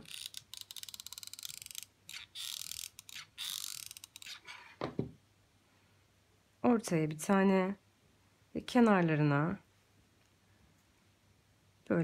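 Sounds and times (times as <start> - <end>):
glue gun ratcheting clicks: 0.0 - 4.4.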